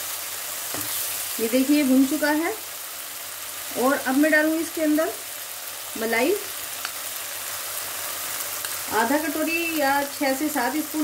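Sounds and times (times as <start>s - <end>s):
masala sizzling in oil: 0.0s - 11.0s.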